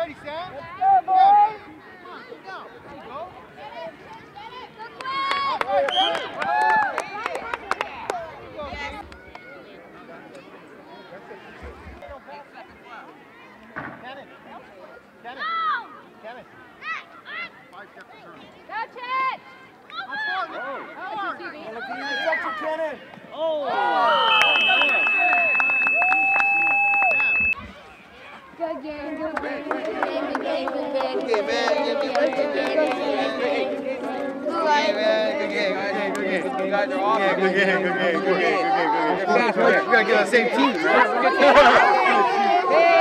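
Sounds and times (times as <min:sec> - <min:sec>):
children's voices chattering: 0:00.0 - 0:06.3, 0:07.0 - 0:26.0, 0:27.0 - 0:43.0
steady high tone: 0:24.4 - 0:27.6.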